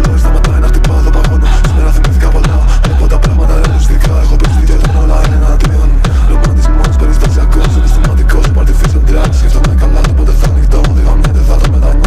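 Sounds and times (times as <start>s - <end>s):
heavy kick drum: 0.0s - 12.0s.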